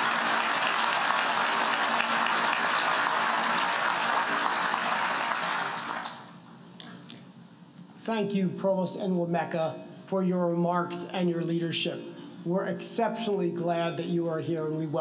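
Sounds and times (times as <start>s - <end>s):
large audience applauding: 0.0s - 6.4s.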